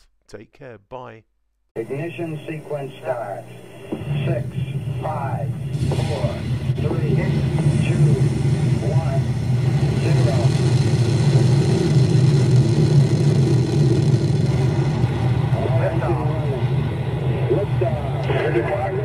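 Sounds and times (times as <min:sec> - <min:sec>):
commentator speaking: 0:00.0 - 0:09.3
rocket engines rumbling: 0:01.8 - 0:19.0.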